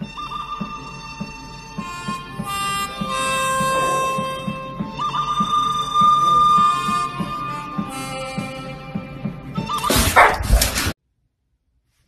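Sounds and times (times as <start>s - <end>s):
background music: 0.0s - 11.0s
dog barking: 9.9s - 10.8s.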